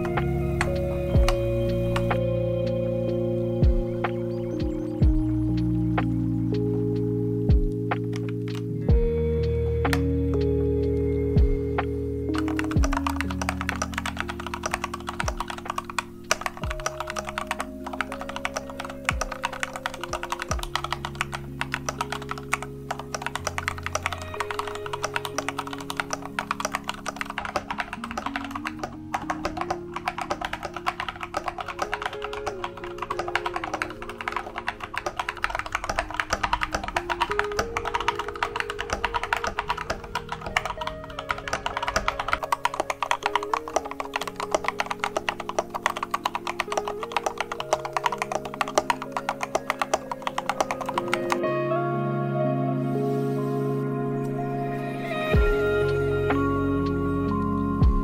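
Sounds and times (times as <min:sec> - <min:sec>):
mechanical keyboard typing: 0:00.0 - 0:02.4, 0:11.8 - 0:51.6
soft background music: 0:00.0 - 0:58.0.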